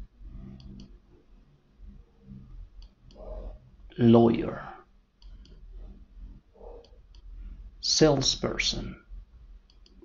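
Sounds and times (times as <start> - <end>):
low steady hum: 0.0 - 10.0
faint clicks: 9.6 - 10.0.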